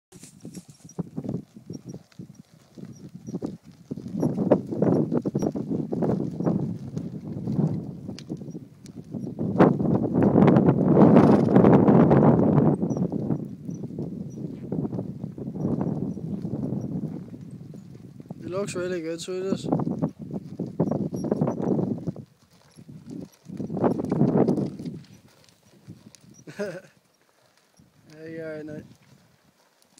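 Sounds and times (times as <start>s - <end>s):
horse hooves trotting on sand: 0.1s - 29.9s.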